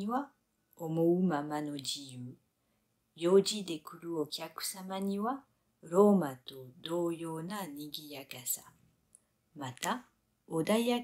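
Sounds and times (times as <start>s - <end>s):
woman reading aloud: 0.0s - 2.4s, 3.2s - 8.7s, 9.6s - 11.0s.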